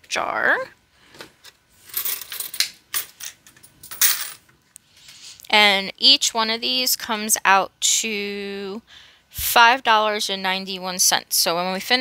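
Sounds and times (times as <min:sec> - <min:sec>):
coins clinking into a jar: 0:01.9 - 0:04.4.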